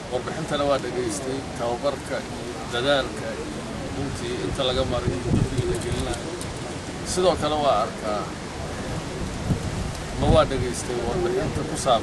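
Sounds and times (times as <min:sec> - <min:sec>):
man speaking: 0:00.0 - 0:06.4, 0:07.0 - 0:08.4, 0:10.2 - 0:12.0
outdoor hiss with low rumble: 0:00.0 - 0:12.0.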